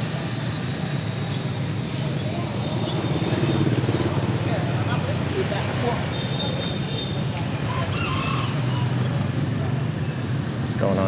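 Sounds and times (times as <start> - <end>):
scooter engines humming: 0.0 - 11.0.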